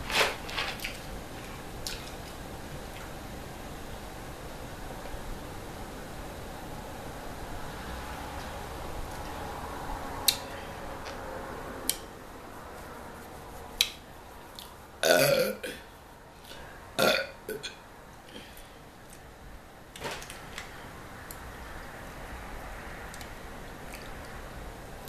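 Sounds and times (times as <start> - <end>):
woman burping: 15.0 - 15.8, 17.0 - 17.8.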